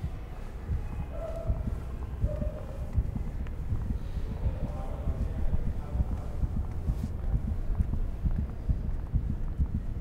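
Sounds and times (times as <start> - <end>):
low rumble: 0.0 - 10.0
rapid low thuds: 0.0 - 10.0.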